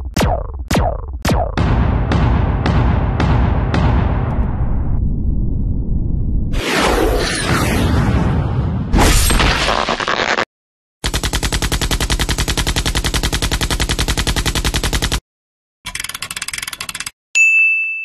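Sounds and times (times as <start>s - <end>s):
cartoon machine-gun fire: 11.0s - 15.2s.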